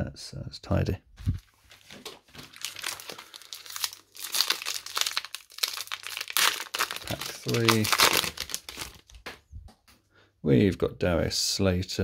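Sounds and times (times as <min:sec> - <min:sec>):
foil wrapper crinkling and tearing: 0:01.4 - 0:09.2.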